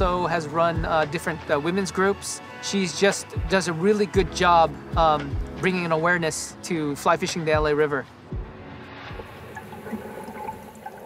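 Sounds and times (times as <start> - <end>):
water gurgling: 8.6 - 11.0
water dripping: 9.0 - 11.0.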